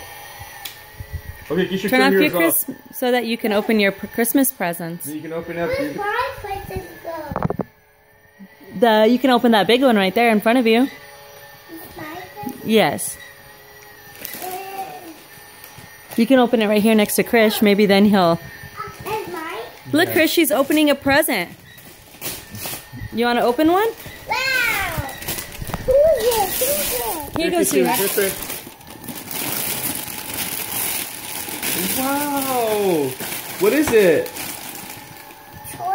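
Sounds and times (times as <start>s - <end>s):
gift wrap rustling: 13.4s - 35.9s
child's vocal sound: 24.3s - 25.2s, 25.9s - 27.3s.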